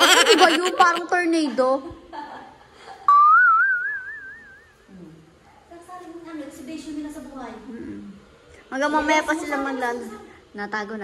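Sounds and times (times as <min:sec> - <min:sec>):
warbling whistle: 0:03.1 - 0:04.8.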